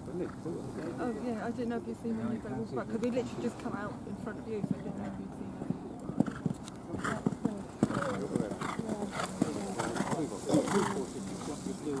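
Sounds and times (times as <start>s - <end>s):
horse hoofbeats on gravel: 6.1s - 12.0s.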